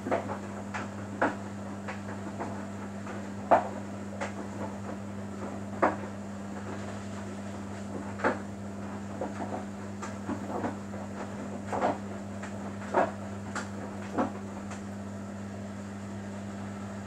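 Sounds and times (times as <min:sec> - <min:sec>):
washing machine motor hum: 0:00.0 - 0:17.0.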